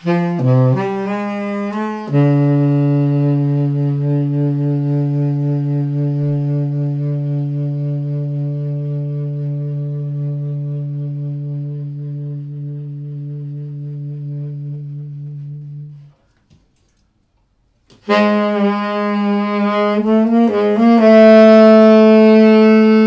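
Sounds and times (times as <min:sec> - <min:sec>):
tenor saxophone long low note: 0:00.0 - 0:16.2, 0:18.0 - 0:23.0.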